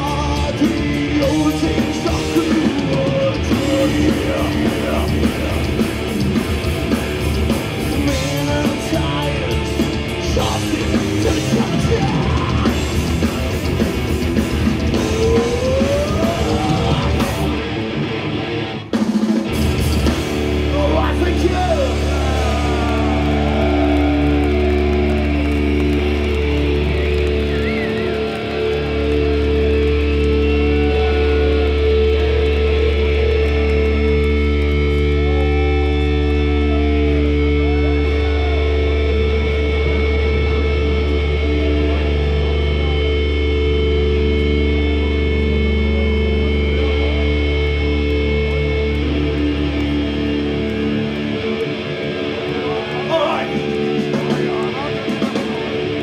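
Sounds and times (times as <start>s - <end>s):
crowd shouting: 20.7s - 34.0s, 34.9s - 43.6s, 50.3s - 56.0s.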